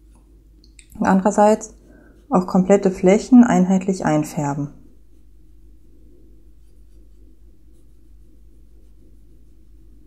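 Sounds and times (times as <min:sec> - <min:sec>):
steady low hum: 0:00.0 - 0:10.0
brush strokes on wet paper: 0:05.1 - 0:10.0.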